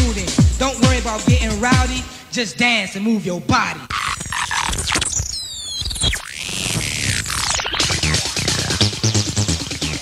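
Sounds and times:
electronic track beat: 0.0s - 2.1s, 3.8s - 10.0s
high squealing electronic tones: 3.9s - 8.9s.

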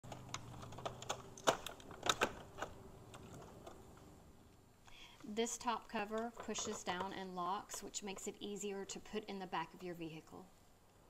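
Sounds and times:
plastic parts clicking and clacking: 0.1s - 4.1s, 5.8s - 8.4s.

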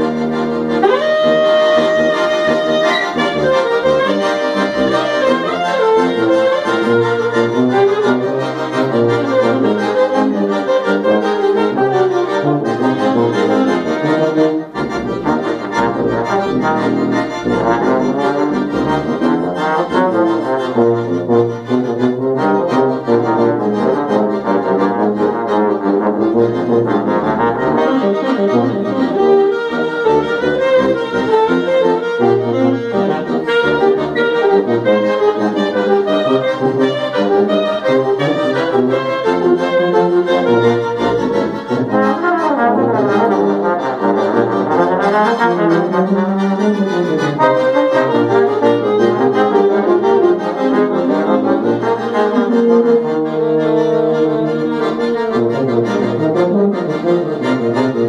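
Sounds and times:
accordion: 0.0s - 58.0s
saxophone: 0.0s - 58.0s
trombone: 0.0s - 58.0s
tuba bass line: 0.0s - 58.0s.

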